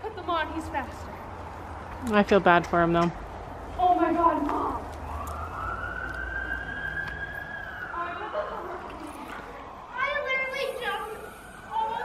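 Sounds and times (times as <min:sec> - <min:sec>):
siren wailing: 0:03.9 - 0:12.0.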